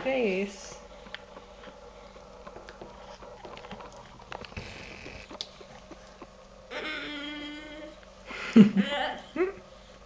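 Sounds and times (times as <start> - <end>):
baby humming: 6.7 - 8.0.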